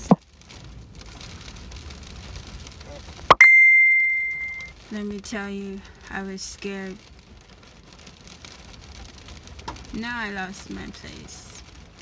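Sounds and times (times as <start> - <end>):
ding with high ringing tone: 3.4 - 4.7.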